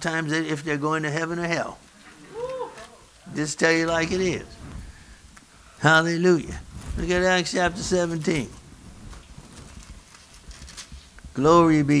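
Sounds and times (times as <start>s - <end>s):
low steady hum: 0.0s - 12.0s
paper pages rustling: 6.5s - 12.0s.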